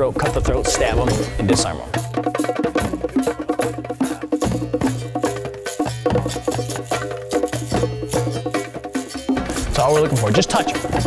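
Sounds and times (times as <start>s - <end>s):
background music: 0.0s - 11.0s
wooden clicks beat: 9.3s - 11.0s.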